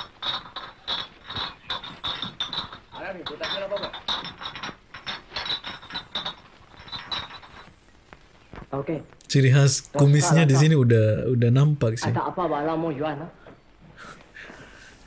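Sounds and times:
rapid clicking or knocking: 0.0s - 7.7s
man speaking: 9.2s - 12.2s.

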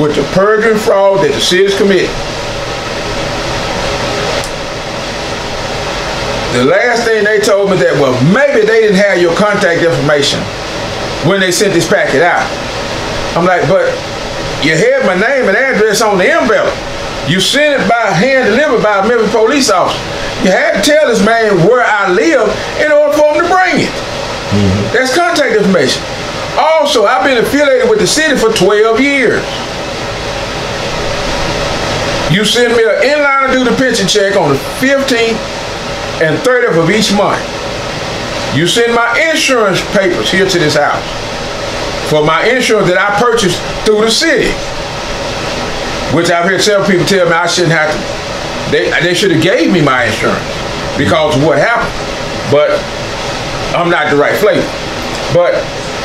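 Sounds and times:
rushing background noise: 0.0s - 56.0s
steady background hiss: 0.0s - 56.0s
low hum: 22.5s - 25.5s.

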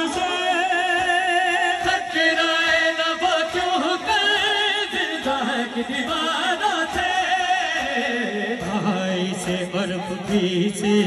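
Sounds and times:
man chanting lament through speakers: 0.0s - 11.0s.

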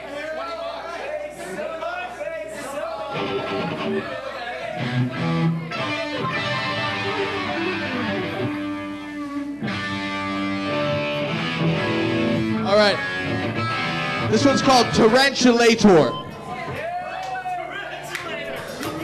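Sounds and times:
electric guitars noodling: 4.8s - 15.9s.

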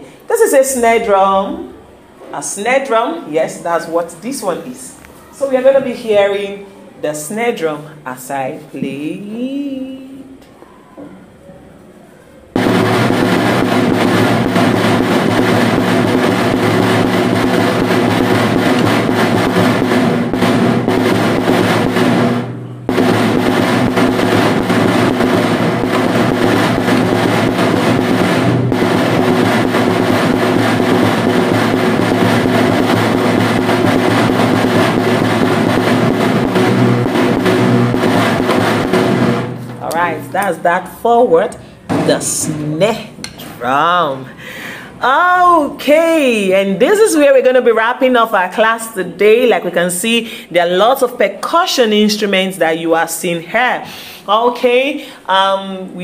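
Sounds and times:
snare drum rapid strokes: 12.6s - 40.6s.

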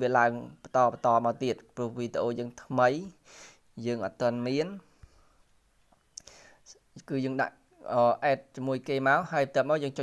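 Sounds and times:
faint breath: 3.2s - 3.7s, 4.8s - 5.6s, 6.2s - 6.7s
mouth clicks: 5.9s - 6.4s.

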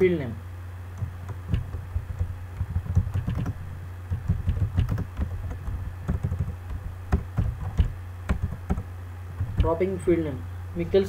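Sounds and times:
steady low hum: 0.0s - 11.0s
computer keyboard typing: 1.0s - 9.8s.

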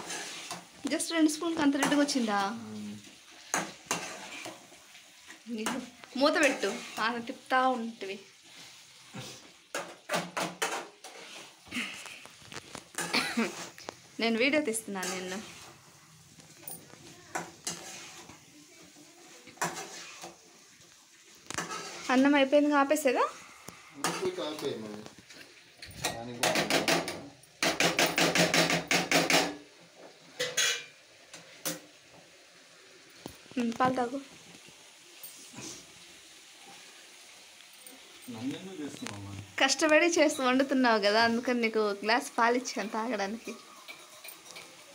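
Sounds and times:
metal spatula scraping pan: 0.0s - 7.8s, 8.4s - 11.6s, 12.8s - 13.9s, 14.6s - 15.9s, 17.3s - 18.5s, 19.5s - 20.4s, 21.5s - 22.7s, 23.3s - 24.8s, 30.3s - 31.8s, 43.4s - 44.9s
kitchen utensils knocking: 25.9s - 29.6s.

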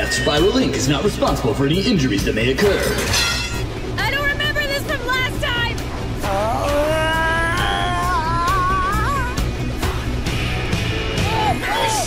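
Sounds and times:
background music: 0.0s - 12.0s
boy screaming: 6.7s - 9.4s.

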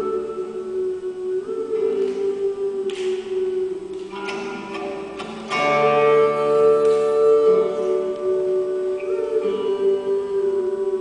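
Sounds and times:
woman singing a long note: 0.0s - 3.9s, 5.6s - 11.0s
acoustic guitar: 0.0s - 11.0s.

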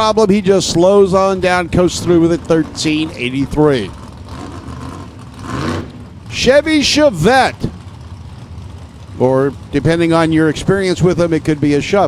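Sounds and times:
race car engine at low revs: 0.0s - 12.0s.

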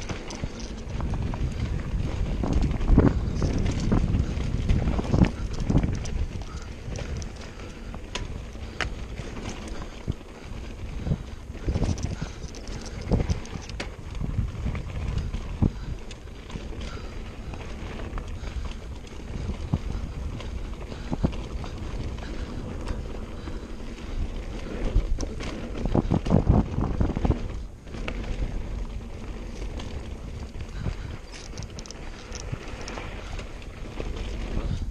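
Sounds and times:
bike knocking and rattling: 0.0s - 34.9s
bike tyres on dirt trail: 0.0s - 34.9s
wind on microphone: 0.0s - 34.9s.

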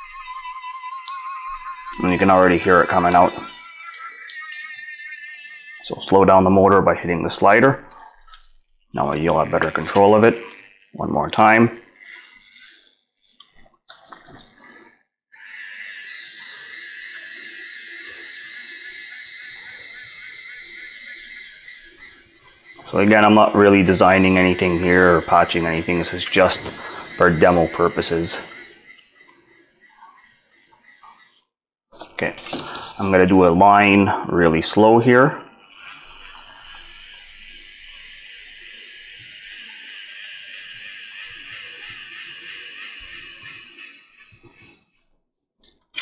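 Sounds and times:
motor high whine: 0.0s - 31.4s, 35.6s - 44.9s.

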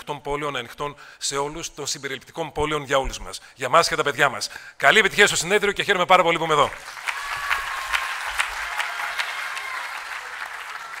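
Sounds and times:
audience applauding: 6.7s - 11.0s.

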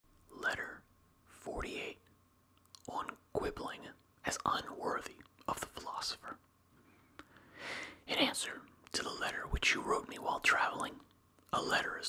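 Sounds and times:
man whispering: 0.3s - 2.1s, 2.7s - 6.5s, 8.0s - 12.0s.

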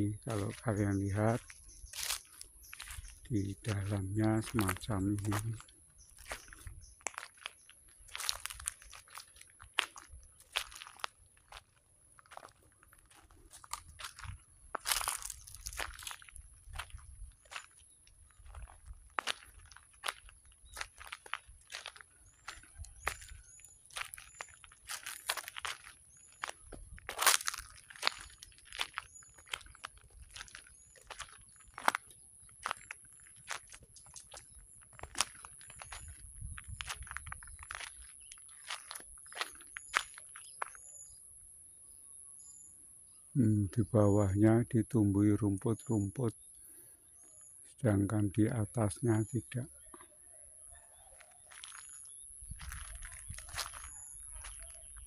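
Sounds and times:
footsteps crunching through leaves: 0.3s - 40.8s, 51.4s - 55.0s.

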